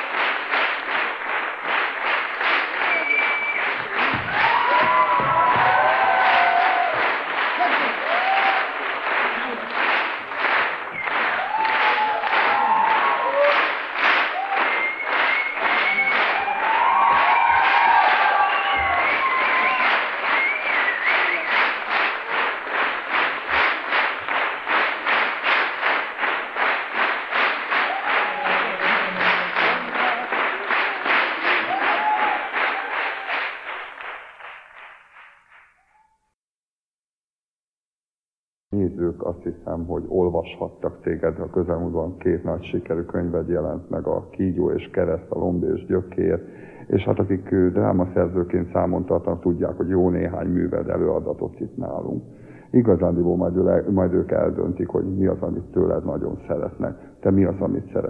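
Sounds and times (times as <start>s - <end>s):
audience clapping in unison: 0.0s - 36.2s
shouts and cheers: 2.8s - 8.8s, 11.0s - 21.5s, 27.8s - 30.2s, 30.9s - 33.6s.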